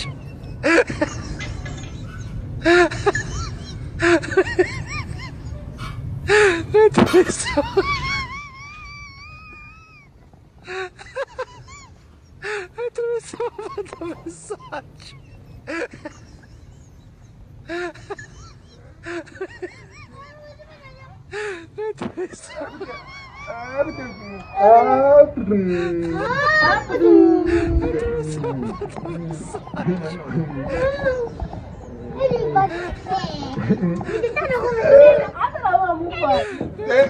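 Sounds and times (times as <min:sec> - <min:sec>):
high wavering cry: 0:02.0 - 0:10.3, 0:22.5 - 0:33.2
person wailing and moaning: 0:21.3 - 0:31.4.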